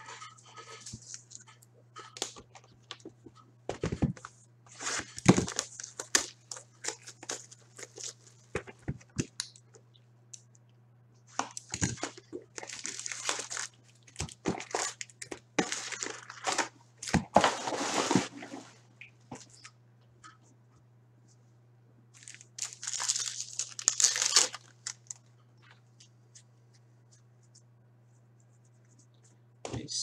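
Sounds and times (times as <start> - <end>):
low steady hum: 0.0 - 30.0
plastic wrapping crinkling and tearing: 4.8 - 8.7, 11.3 - 17.6, 22.2 - 25.3.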